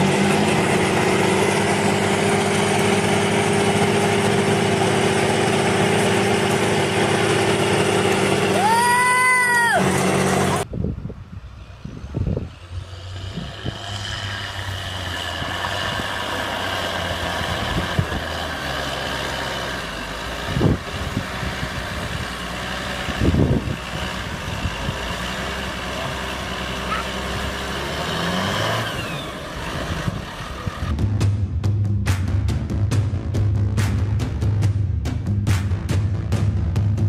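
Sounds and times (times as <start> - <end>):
tractor diesel engine running: 0.0 - 31.8.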